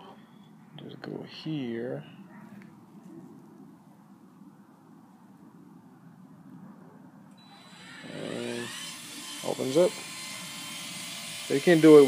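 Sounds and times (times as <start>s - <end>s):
electric actuator motor whining: 7.4s - 12.0s.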